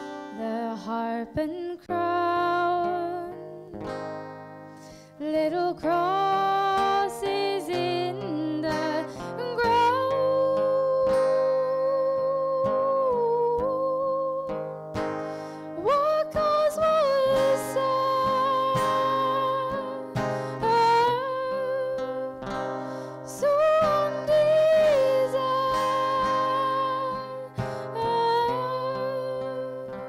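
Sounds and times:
acoustic guitar: 0.0 - 30.0
woman singing a ballad: 0.0 - 30.0.

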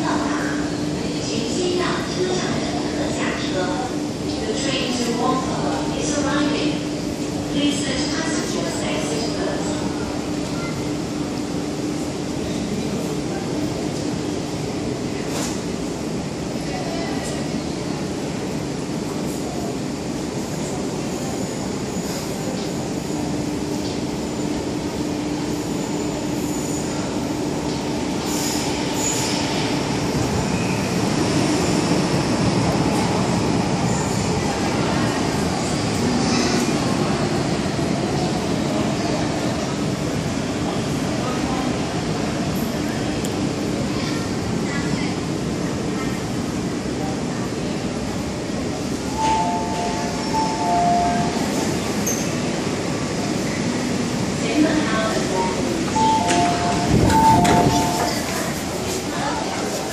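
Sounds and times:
train rumbling: 0.0 - 59.9
train brakes squealing: 28.2 - 29.6.

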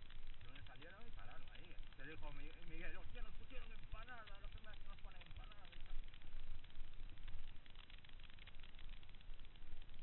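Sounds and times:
bike rolling on dirt trail: 0.0 - 10.0.

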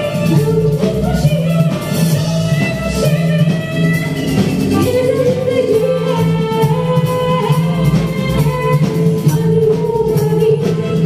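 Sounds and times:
drums: 0.0 - 11.0
live band playing: 0.0 - 11.0.

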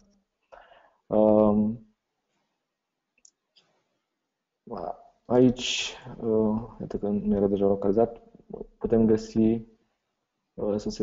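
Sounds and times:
man speaking: 1.1 - 1.8, 4.7 - 9.6, 10.6 - 11.0.

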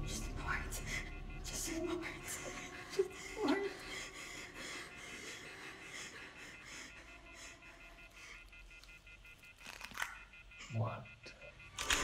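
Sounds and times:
rapid pulsing electronic beep: 0.0 - 12.0.

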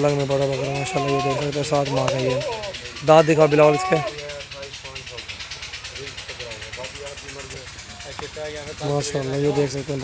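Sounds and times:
steady noise bed: 0.0 - 10.0.

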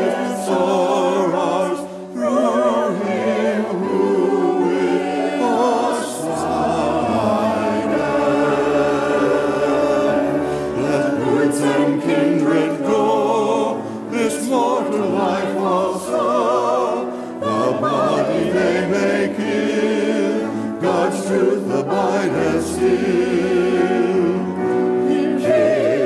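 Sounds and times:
church choir singing: 0.0 - 26.0.

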